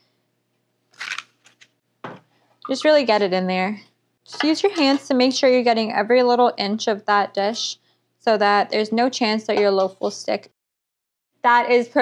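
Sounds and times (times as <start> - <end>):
paper wrapper rustling: 1.0 - 1.7.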